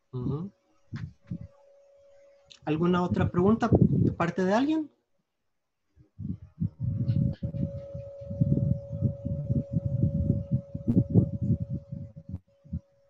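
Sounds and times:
steady hum: 0.0 - 4.9, 6.0 - 13.0
irregular low rumbling: 6.1 - 12.9.

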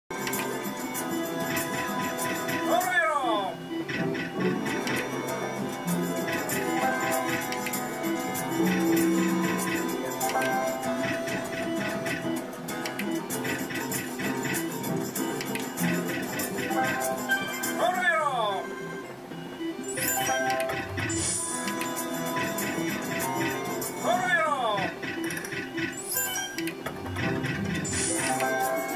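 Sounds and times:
slot machine game music: 0.1 - 28.9
slot machine win sound: 0.1 - 28.9
sliding electronic tone: 0.2 - 28.9
soft electronic tones: 1.1 - 28.9.

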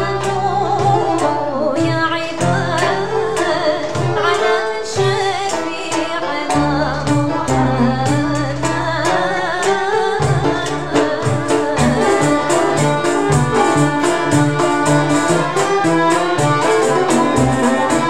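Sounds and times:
ensemble playing oud violins banjo: 0.0 - 18.0
frame drum beat: 0.0 - 18.0
woman singing: 0.0 - 18.0.

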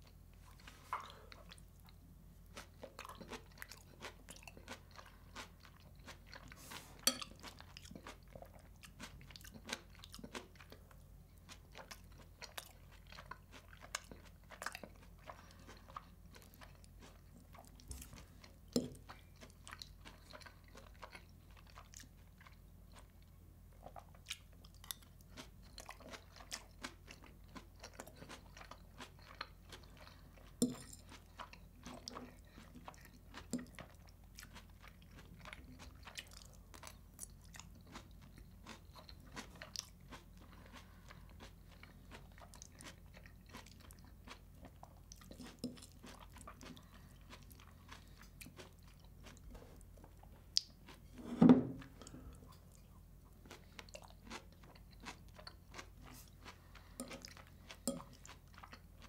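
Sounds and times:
crunchy chewing: 0.0 - 51.2, 51.8 - 59.0.

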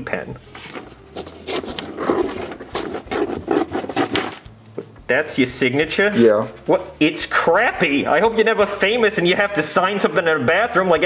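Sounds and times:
pen scribbling on paper: 1.1 - 4.4.

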